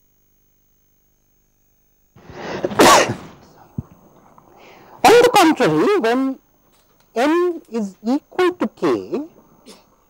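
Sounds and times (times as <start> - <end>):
person sneezing: 2.2 - 3.9.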